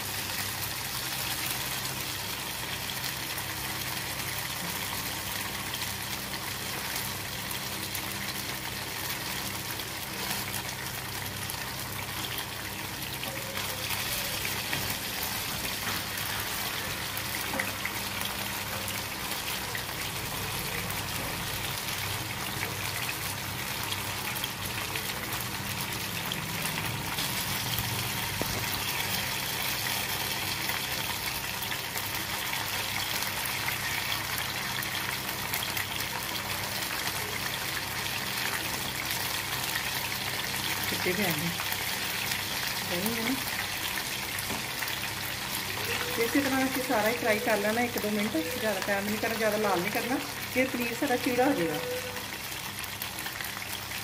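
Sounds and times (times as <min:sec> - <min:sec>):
food sizzling in hot oil: 0:00.0 - 0:54.0.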